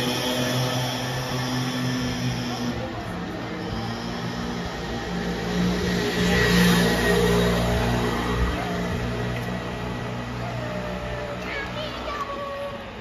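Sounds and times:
vehicle engine passing by: 0.0s - 11.4s.

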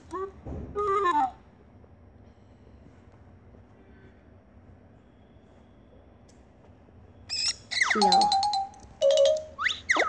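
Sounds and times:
cartoon chicken squawking: 7.3s - 8.4s, 9.6s - 10.0s.

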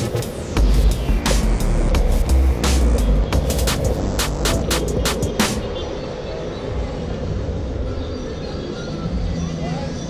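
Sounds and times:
background music: 0.0s - 5.8s.

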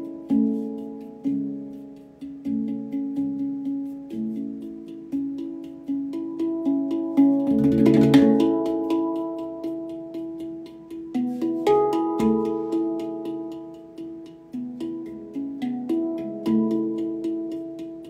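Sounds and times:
handpan melody: 0.0s - 18.0s.

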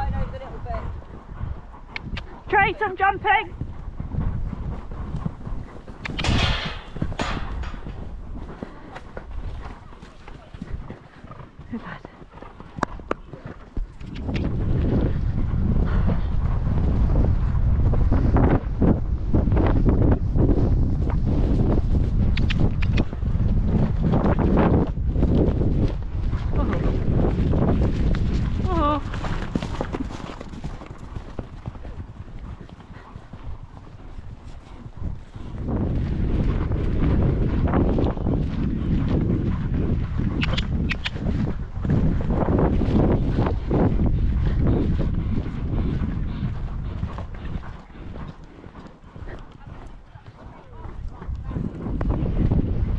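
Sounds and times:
horse hoofbeats on grass: 0.0s - 52.9s
wind rushing on microphone: 0.0s - 52.9s.

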